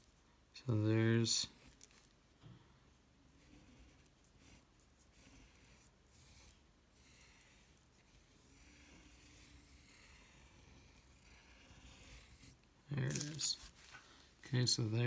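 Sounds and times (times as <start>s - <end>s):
pencil scratching on paper: 3.3s - 14.0s.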